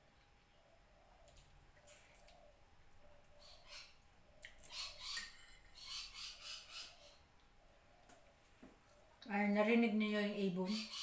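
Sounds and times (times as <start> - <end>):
birds making harsh calls: 1.9 - 8.3, 10.6 - 11.0.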